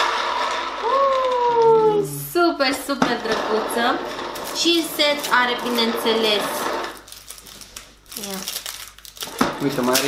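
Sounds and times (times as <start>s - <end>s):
packaging crinkling: 4.4s - 10.0s.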